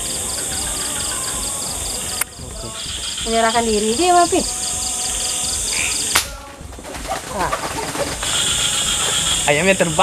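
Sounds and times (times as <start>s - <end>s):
air rifle shot: 6.1s - 6.4s.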